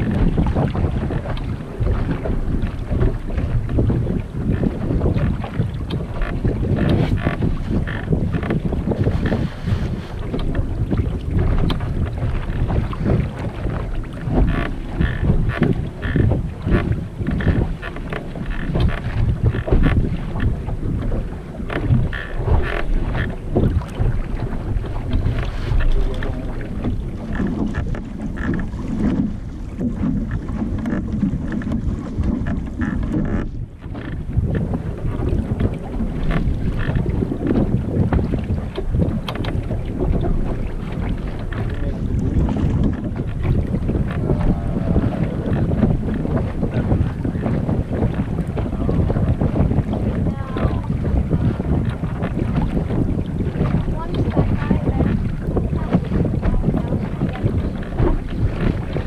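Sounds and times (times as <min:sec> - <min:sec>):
water rushing along hull: 0:00.0 - 0:59.0
wind buffeting microphone: 0:00.0 - 0:59.0.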